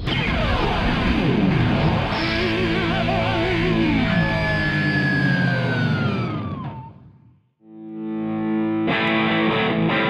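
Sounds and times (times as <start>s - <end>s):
overdriven electric guitar: 0.0s - 7.0s, 7.6s - 10.0s.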